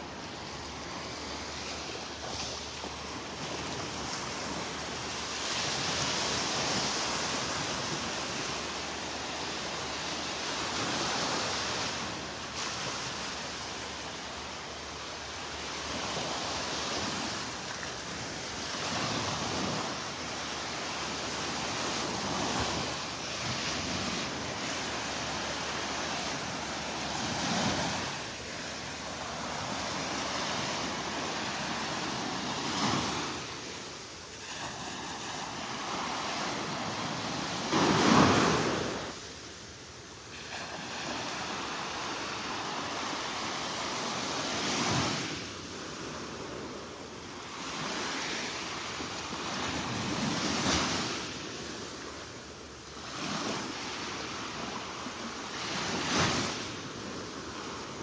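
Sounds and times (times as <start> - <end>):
small waves breaking on beach: 0.0 - 58.0.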